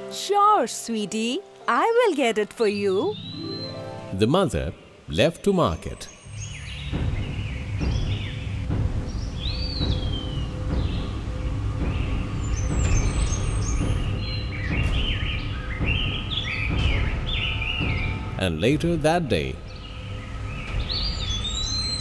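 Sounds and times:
birds chirping: 1.7 - 22.0
giant footsteps heavy thuds: 6.9 - 18.4.

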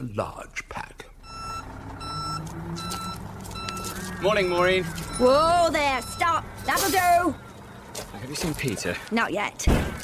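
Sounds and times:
engine running: 0.8 - 9.6
vehicle reversing alarm beeping: 1.2 - 9.2.

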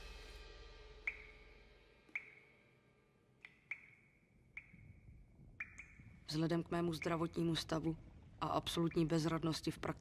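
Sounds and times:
water drips pinging: 1.0 - 1.5, 2.1 - 2.6, 3.4 - 9.4.

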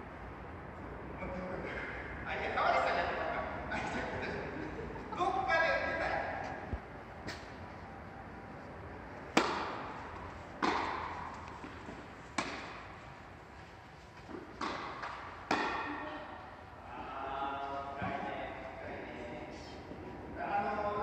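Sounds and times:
tennis ball hit by rackets: 9.3 - 13.0, 14.3 - 16.1.

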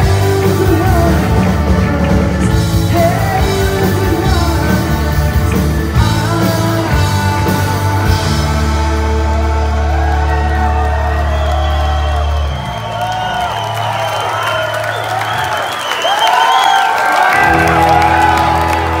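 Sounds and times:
crowd cheering and whistling: 8.1 - 19.0.

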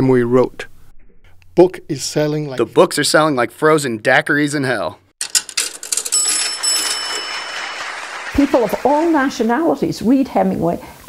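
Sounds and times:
cash register mechanical clatter: 5.2 - 8.2
cash register bell ding: 5.2 - 8.9.

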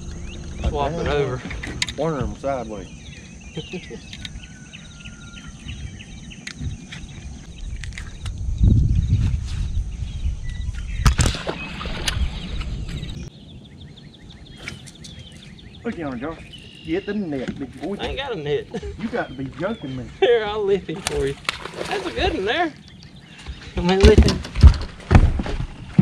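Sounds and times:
low rumble: 0.0 - 3.4
insects chirping: 0.0 - 25.1.

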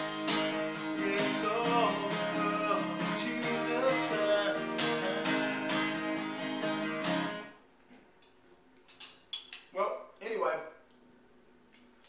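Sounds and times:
spoon clinking against bowl: 8.9 - 9.8.

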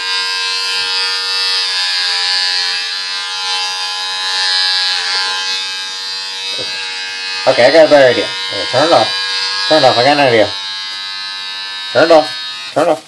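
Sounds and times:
electric hair clippers buzzing: 0.0 - 13.0.

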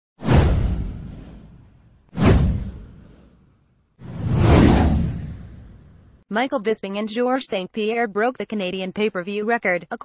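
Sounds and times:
whoosh sound effect: 0.2 - 6.2
deep rumble: 4.0 - 6.2.

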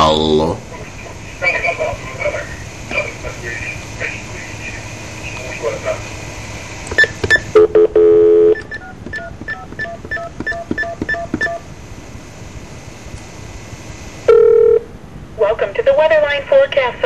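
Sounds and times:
touch-tone keypad beeps: 7.0 - 11.6.

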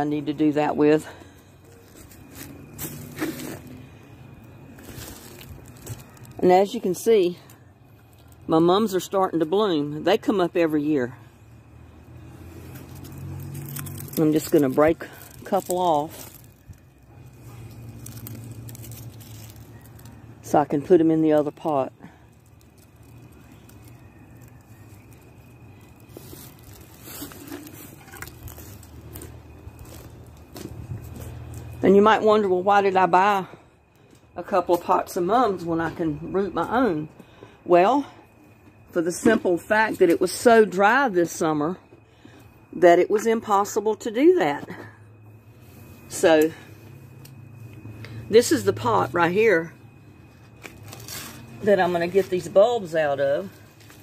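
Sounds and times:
stems rustling and crackling: 0.0 - 33.3, 50.2 - 54.0.

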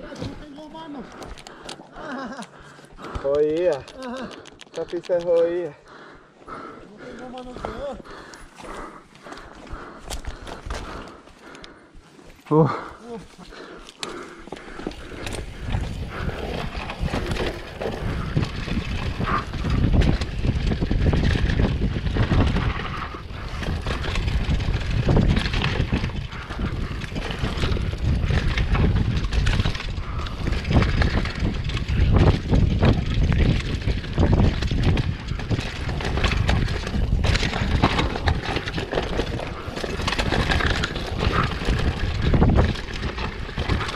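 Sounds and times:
bike rattling and knocking: 0.0 - 11.9, 12.5 - 43.9
bike tyres crunching over dirt: 0.0 - 43.9
wind buffeting microphone: 14.4 - 43.9.

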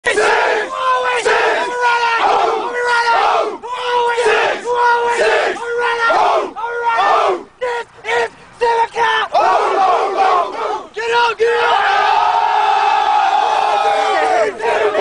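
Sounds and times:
young men chanting and shouting: 0.0 - 15.0.

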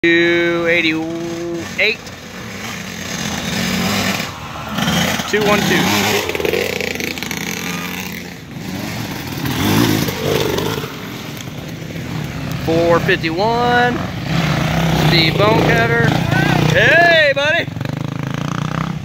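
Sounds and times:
dirt bike engine revving: 0.0 - 19.0.

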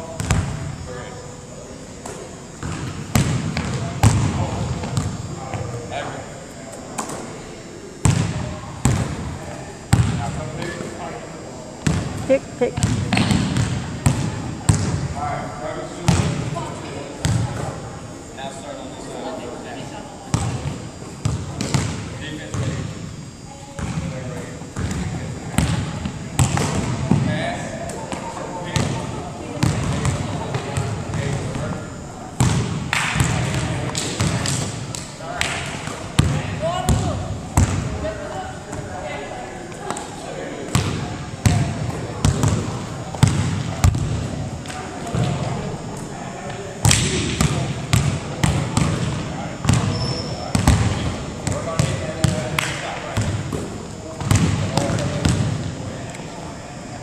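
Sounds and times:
indistinct voices talking: 0.0 - 57.0
basketballs bouncing on wooden floor: 2.6 - 5.2, 12.7 - 15.0, 21.2 - 22.6, 32.4 - 33.6, 36.2 - 37.9, 42.2 - 44.2, 46.9 - 52.4, 53.2 - 55.6.

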